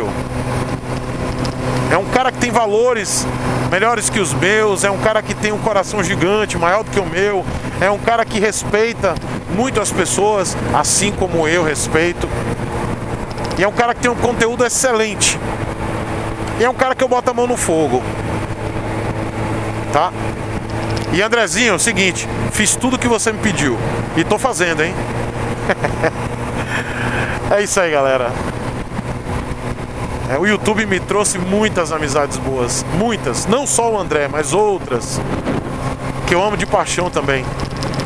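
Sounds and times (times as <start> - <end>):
motorcycle engine humming: 0.0 - 38.0
wind noise rushing: 7.4 - 8.1, 8.9 - 16.6, 17.8 - 22.8, 23.8 - 30.3, 34.8 - 36.3.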